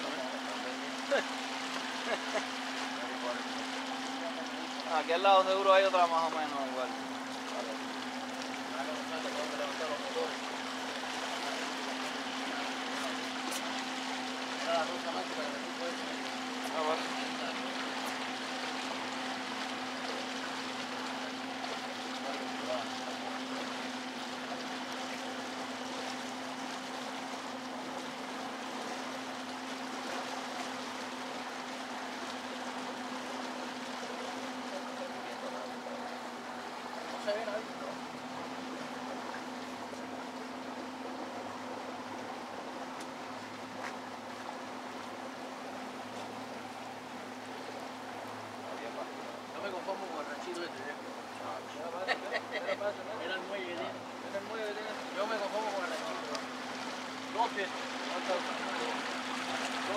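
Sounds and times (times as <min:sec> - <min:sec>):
boat engine humming: 0:00.0 - 0:59.9
water washing along hull: 0:00.0 - 0:59.9.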